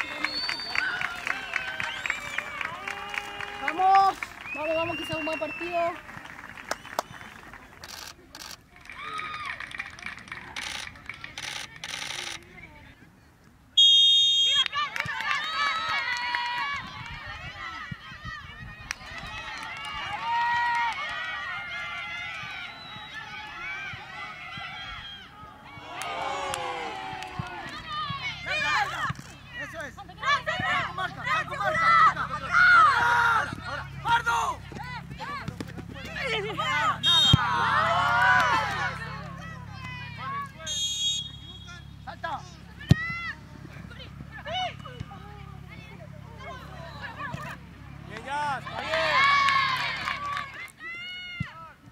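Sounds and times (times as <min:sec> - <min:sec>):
players calling and shouting: 0:00.0 - 0:51.9
referee's whistle blast: 0:13.8 - 0:14.7, 0:37.0 - 0:37.5, 0:40.6 - 0:42.1.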